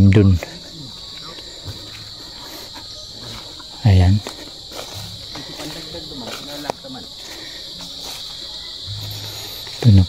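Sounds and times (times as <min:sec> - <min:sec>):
faint distant voices: 0:00.0 - 0:10.0
high-pitched insect chorus: 0:00.0 - 0:10.0.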